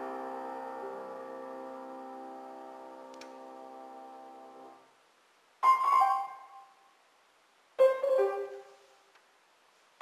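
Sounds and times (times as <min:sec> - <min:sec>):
grand piano chord held: 0:00.0 - 0:04.7
faint click: 0:03.1 - 0:03.4.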